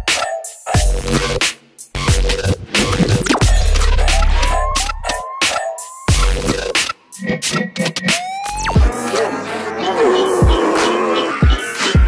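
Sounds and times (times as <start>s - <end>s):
electronic dance music: 2.0s - 12.0s.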